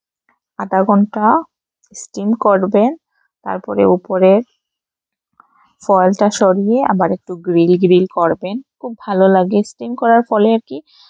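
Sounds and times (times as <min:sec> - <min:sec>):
person talking: 0:02.0 - 0:04.4, 0:05.9 - 0:10.8.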